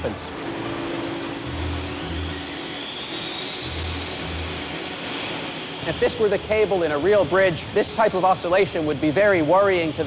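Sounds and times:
wind tunnel fan spinning up: 0:00.0 - 0:10.0.

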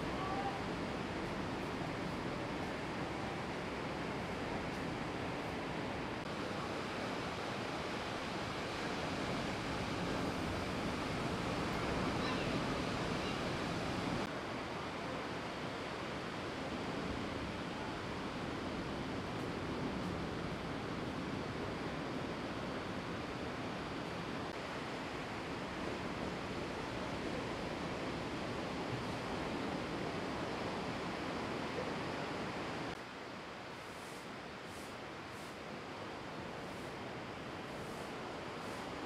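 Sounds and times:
waves breaking: 0:06.8 - 0:14.3.

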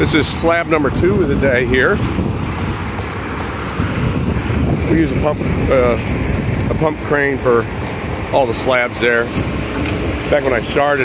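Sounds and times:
truck diesel engine running: 0:00.0 - 0:11.0
wind buffeting microphone: 0:00.0 - 0:11.0.

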